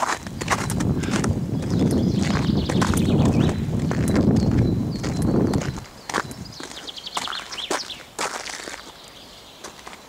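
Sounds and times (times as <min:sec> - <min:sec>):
low rumble of wind on microphone: 0:00.0 - 0:06.8
footsteps on wet ground: 0:00.0 - 0:10.0.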